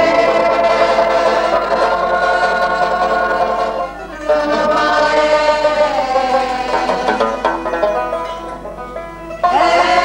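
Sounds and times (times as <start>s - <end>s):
person singing: 0.0s - 7.5s, 9.4s - 10.0s
banjo strumming: 0.0s - 10.0s.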